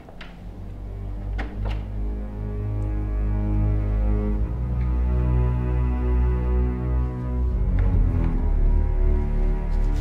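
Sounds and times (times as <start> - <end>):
eerie film score drone: 0.0 - 10.0.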